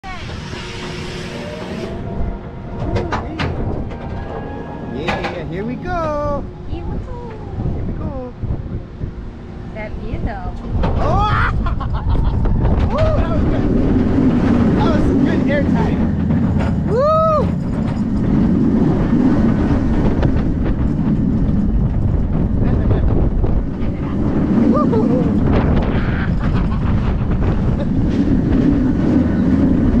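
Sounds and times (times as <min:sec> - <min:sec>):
roller coaster train running: 0:00.0 - 0:30.0
wind rushing over microphone: 0:01.4 - 0:30.0.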